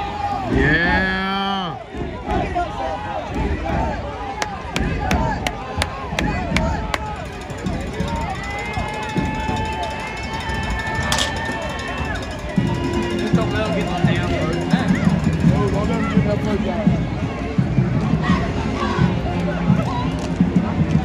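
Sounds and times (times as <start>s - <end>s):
stadium crowd voices: 0.0s - 21.0s
band music with held notes: 8.0s - 18.3s.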